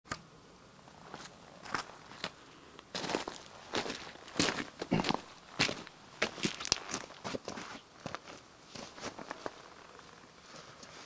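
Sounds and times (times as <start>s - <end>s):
footsteps on grass and dirt: 0.9s - 11.0s.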